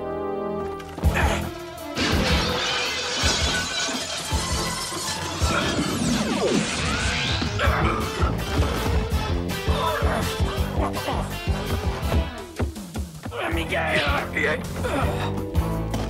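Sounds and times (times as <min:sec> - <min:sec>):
cartoon glass shattering: 0:02.0 - 0:07.4
falling zap: 0:02.0 - 0:07.6
action music with steady beat: 0:07.4 - 0:16.0.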